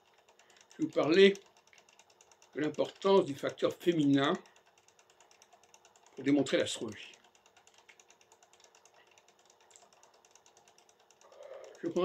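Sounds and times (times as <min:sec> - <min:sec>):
rapid faint ticking: 0:00.0 - 0:12.0
man speaking: 0:06.2 - 0:07.2, 0:11.6 - 0:12.0.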